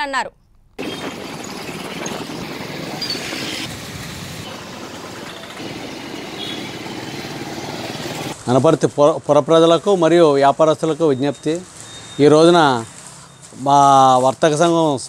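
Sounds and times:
motorcycles passing: 0:00.8 - 0:08.4.

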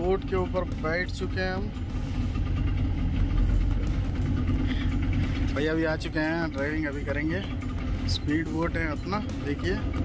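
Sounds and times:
outboard motor idling: 0:00.0 - 0:10.0.

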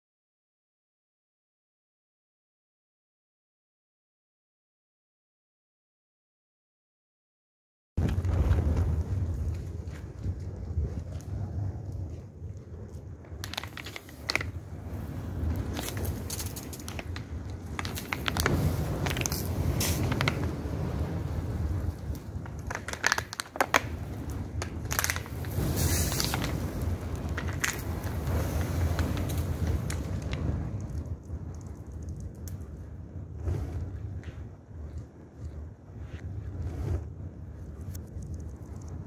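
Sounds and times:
fire crackling and popping: 0:08.0 - 0:39.0
low steady rumble: 0:08.0 - 0:39.0
sharp fire cracks: 0:08.0 - 0:39.0.

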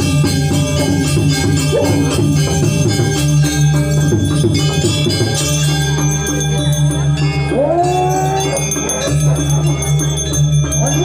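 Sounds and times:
gamelan playing: 0:00.0 - 0:11.0
gong tones: 0:00.0 - 0:11.0
ringing metallophone tones: 0:00.0 - 0:11.0
long rising vocal cry: 0:07.5 - 0:08.8.

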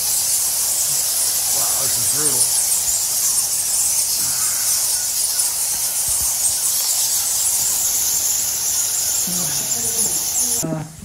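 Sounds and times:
bats squeaking: 0:00.0 - 0:10.6.

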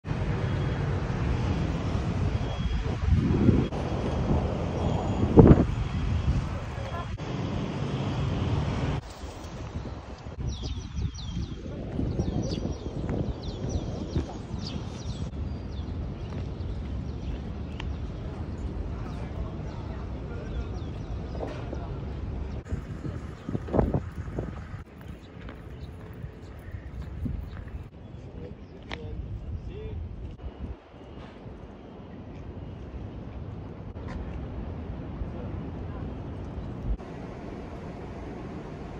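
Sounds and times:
street traffic: 0:00.0 - 0:10.5, 0:14.4 - 0:29.6
wind buffeting microphone: 0:00.1 - 0:31.8.

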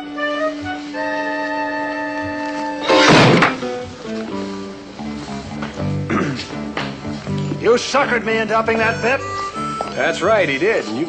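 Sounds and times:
orchestral background music: 0:00.0 - 0:04.0
loud gunshot: 0:02.9 - 0:03.6.

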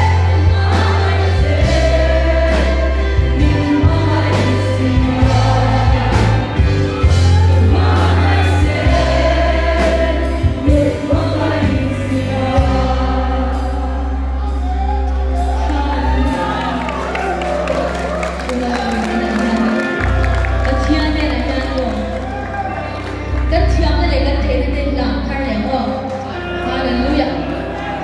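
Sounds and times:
woman singing lead: 0:00.0 - 0:17.2, 0:18.2 - 0:22.3
heavy bass line: 0:00.0 - 0:21.8.

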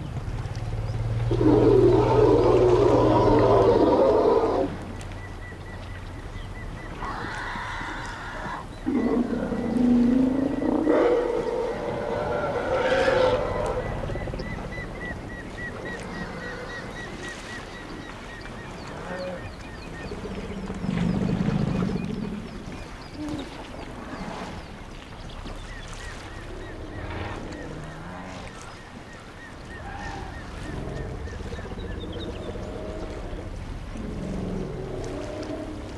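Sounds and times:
elephant deep rumble: 0:00.0 - 0:05.0, 0:06.8 - 0:29.0, 0:29.6 - 0:35.9
elephants roaring: 0:01.1 - 0:04.8, 0:07.0 - 0:15.1.

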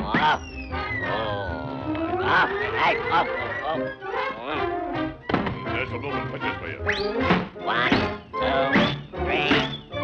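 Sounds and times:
cartoon soundtrack music: 0:00.0 - 0:10.0.

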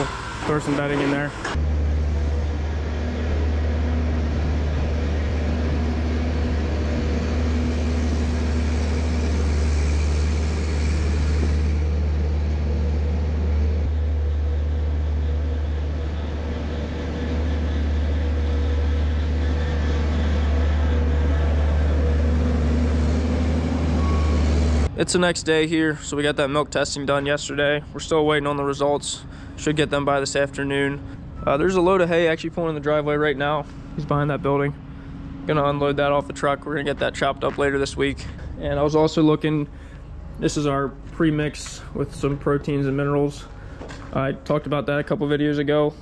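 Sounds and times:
farm machine engine running: 0:00.0 - 0:24.9.

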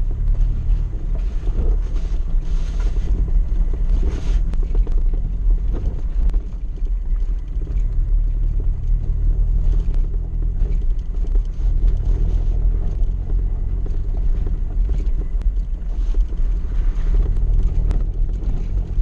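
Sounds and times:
car engine low rumble: 0:00.0 - 0:19.0.

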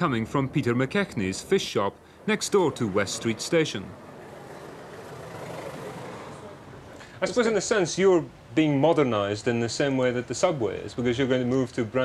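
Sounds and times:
vehicle rumble and hiss: 0:00.0 - 0:12.0.

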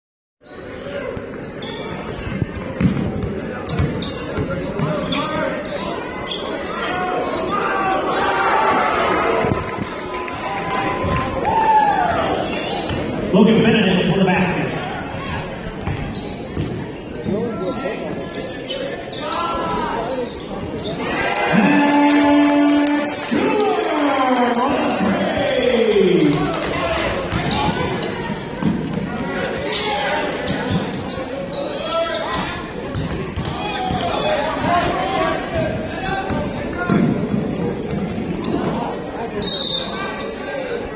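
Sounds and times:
sneakers squeaking: 0:00.4 - 0:08.4, 0:12.3 - 0:13.3, 0:15.0 - 0:21.1, 0:27.0 - 0:40.8
crowd chatter echoing: 0:00.5 - 0:40.9
basketball bouncing: 0:02.6 - 0:05.0, 0:15.8 - 0:16.8, 0:27.2 - 0:29.1, 0:32.9 - 0:38.6.

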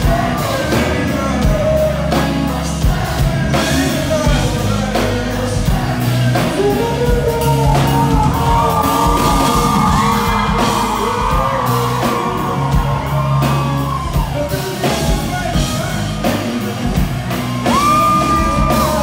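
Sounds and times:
man singing: 0:00.0 - 0:19.0
rock band playing: 0:00.0 - 0:19.0.

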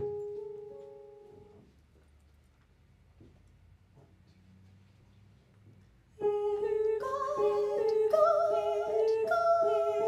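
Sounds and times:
women singing a cappella: 0:06.2 - 0:10.0.

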